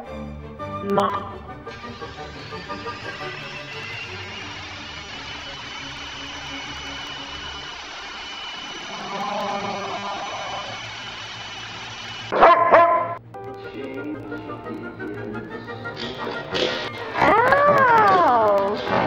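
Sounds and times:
background music: 0.0 - 7.2, 12.3 - 19.0
dog barking loudly: 12.3 - 13.2.

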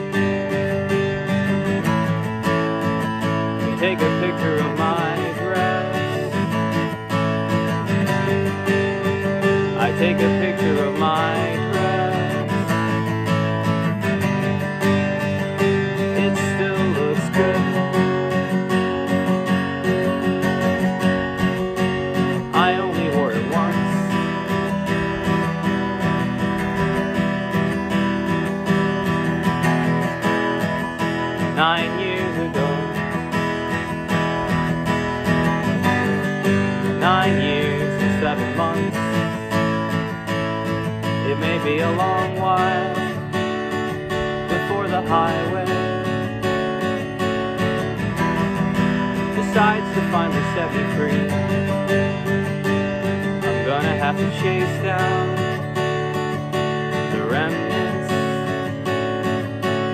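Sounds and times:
acoustic guitar strummed: 0.0 - 59.9
person singing: 2.8 - 7.0, 8.0 - 13.3, 14.2 - 19.4, 20.0 - 27.4, 31.3 - 33.9, 35.7 - 39.9, 41.0 - 46.4, 49.0 - 58.8.

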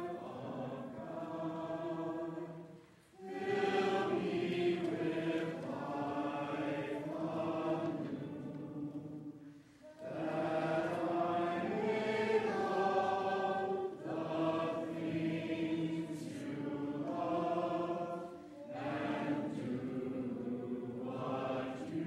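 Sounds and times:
congregation singing a hymn: 0.0 - 22.0.

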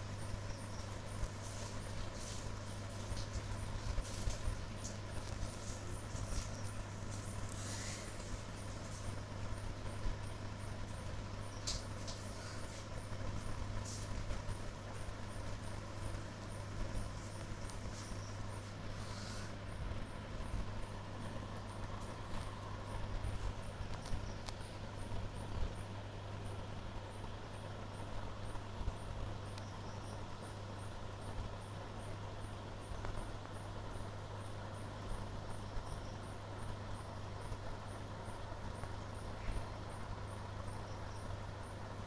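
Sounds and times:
constant low hum: 0.0 - 42.0
high insect chirp: 0.0 - 42.0.

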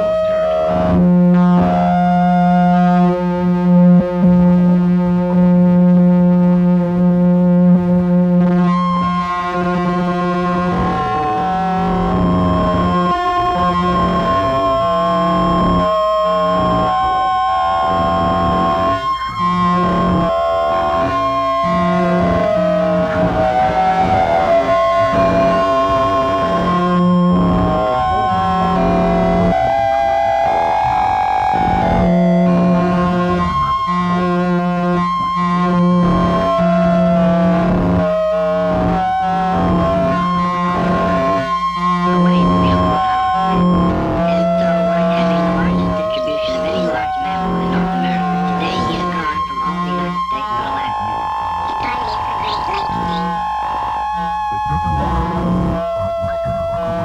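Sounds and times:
droning experimental music: 0.0 - 57.0.

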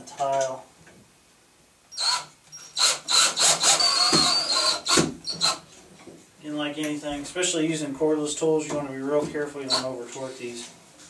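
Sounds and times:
cordless drill driving a screw: 1.9 - 5.6.

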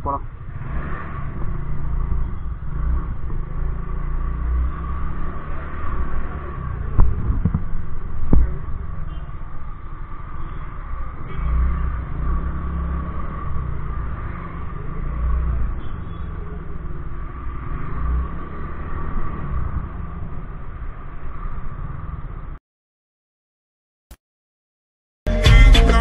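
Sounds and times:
wind rumbling on microphone: 6.7 - 9.0.

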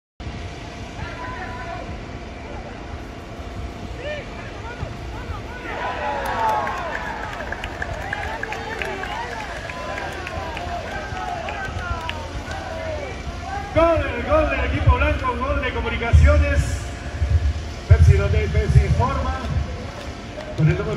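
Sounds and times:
steady low rumble: 0.2 - 20.9
players shouting: 0.9 - 2.9, 3.7 - 17.0.

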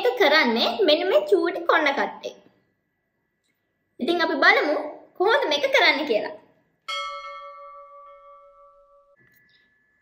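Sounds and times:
ship's bell ringing: 6.9 - 10.0.

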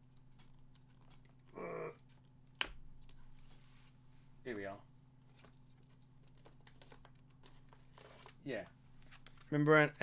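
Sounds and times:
man humming: 1.5 - 2.1.

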